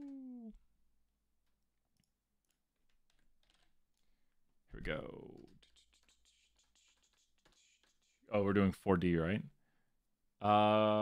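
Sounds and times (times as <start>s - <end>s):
keyboard typing: 2.4s - 4.1s, 5.2s - 8.2s.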